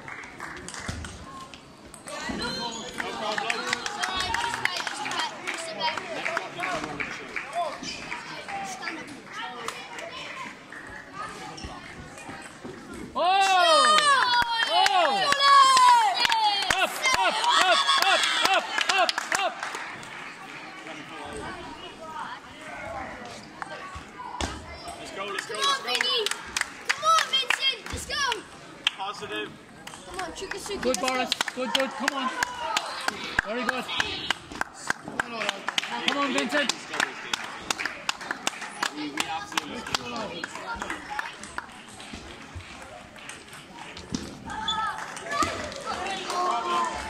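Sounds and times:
people clapping: 0:00.0 - 0:12.3, 0:13.4 - 0:21.7, 0:25.0 - 0:47.0
players shouting excitedly: 0:13.2 - 0:19.6.

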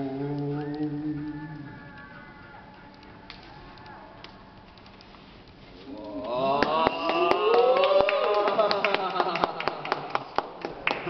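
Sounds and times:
sharp claps and taps: 0:06.6 - 0:11.0.

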